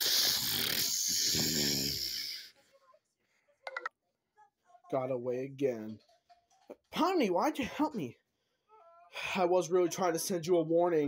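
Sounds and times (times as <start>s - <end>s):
person growling raspily: 0.0s - 2.5s.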